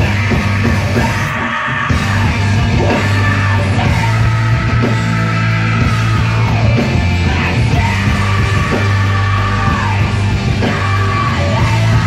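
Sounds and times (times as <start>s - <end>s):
low bass notes: 0.0s - 1.3s, 1.9s - 12.0s
electric guitars: 0.0s - 12.0s
vocalist singing: 0.0s - 12.0s.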